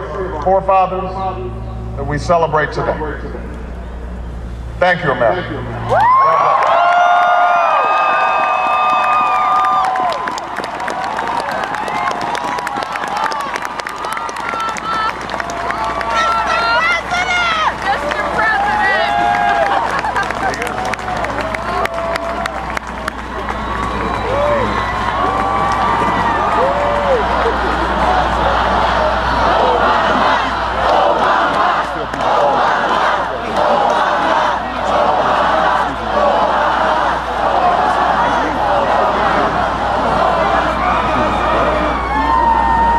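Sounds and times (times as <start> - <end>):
steady low rumble: 0.0 - 42.9
crowd hubbub: 8.2 - 42.9
raised voices calling out: 14.3 - 19.8.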